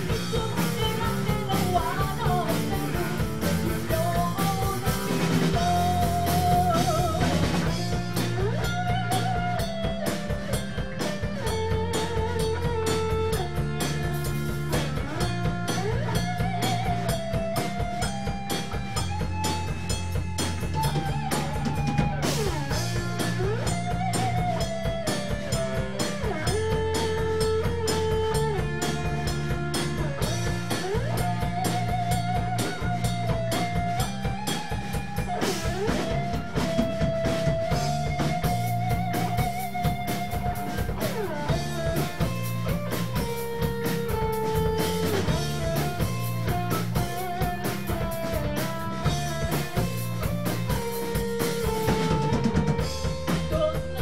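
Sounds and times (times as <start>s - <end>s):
rock band playing: 0.0s - 54.0s.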